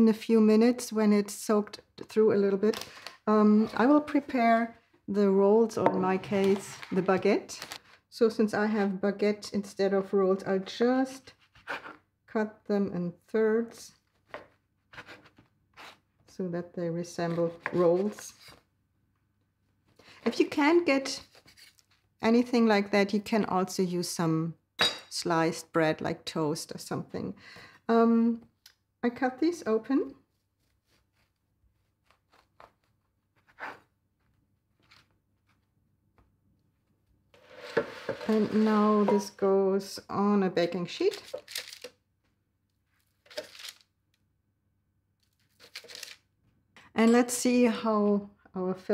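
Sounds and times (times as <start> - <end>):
rustling and handling noise: 6.0 - 8.1, 30.1 - 39.5, 40.6 - 44.2, 45.2 - 46.6.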